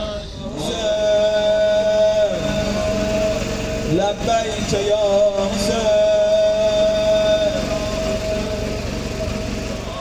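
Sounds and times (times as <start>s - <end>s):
man chanting amplified: 0.0s - 8.8s
steady low rumble: 0.0s - 10.0s.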